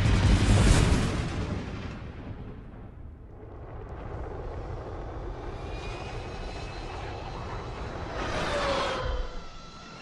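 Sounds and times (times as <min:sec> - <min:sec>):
jet engines rushing and rumbling: 0:00.0 - 0:10.0.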